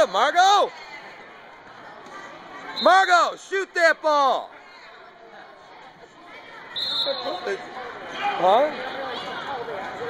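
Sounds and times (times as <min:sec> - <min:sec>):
gymnasium background noise: 0:00.0 - 0:10.0.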